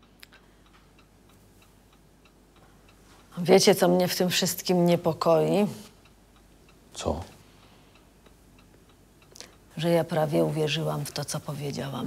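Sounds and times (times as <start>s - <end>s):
faint even ticking: 0.0s - 12.0s.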